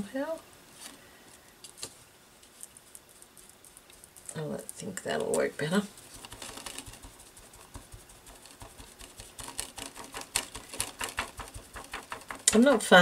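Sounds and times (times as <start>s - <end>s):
sponge tapping on paper: 6.2s - 13.0s.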